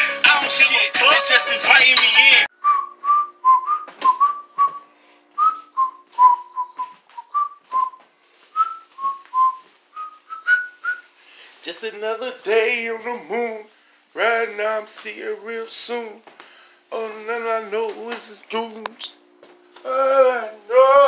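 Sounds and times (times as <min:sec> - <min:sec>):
music: 0:00.0 - 0:02.5
person whistling a tune: 0:02.2 - 0:11.1.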